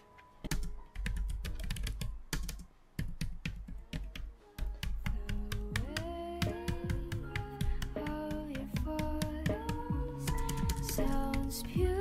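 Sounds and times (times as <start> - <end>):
clicky keyboard typing: 0.0 - 11.7
soft background music: 0.0 - 12.0.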